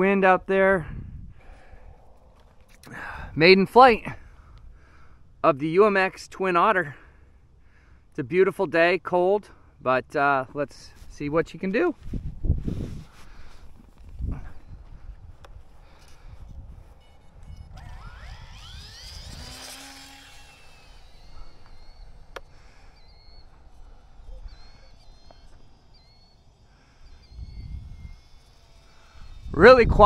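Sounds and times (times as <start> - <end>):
low wind rumble on microphone: 0.8 - 2.4, 12.0 - 19.6, 27.3 - 28.3, 29.0 - 30.0
small electric motors whining: 12.6 - 30.0.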